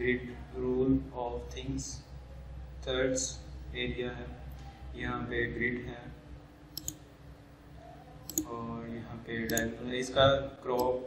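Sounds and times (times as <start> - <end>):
computer mouse clicks: 6.7 - 7.0, 8.2 - 8.5, 9.5 - 9.7.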